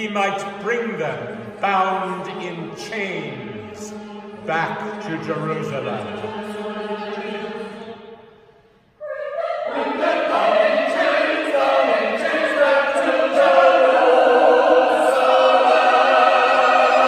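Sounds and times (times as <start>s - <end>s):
men's choir singing: 0.0s - 8.4s, 9.1s - 17.0s.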